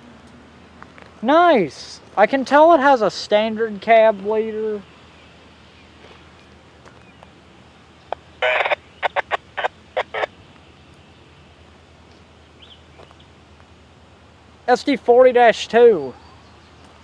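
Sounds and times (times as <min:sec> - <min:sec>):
quiet outdoor background: 0:00.0 - 0:17.0
harsh bird calls: 0:06.9 - 0:11.5.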